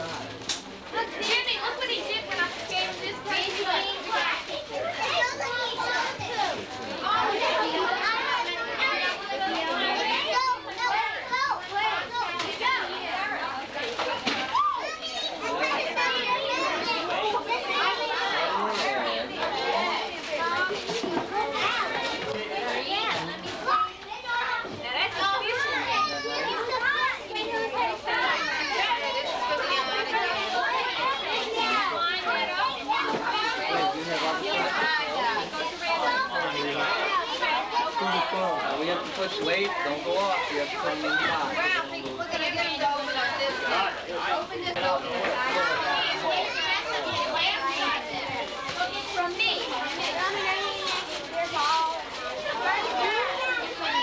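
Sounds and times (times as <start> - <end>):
children chattering and shouting: 0.0 - 54.0.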